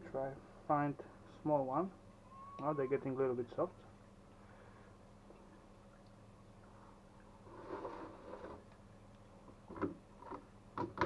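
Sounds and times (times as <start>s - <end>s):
brine sloshing and dripping: 3.6s - 9.7s.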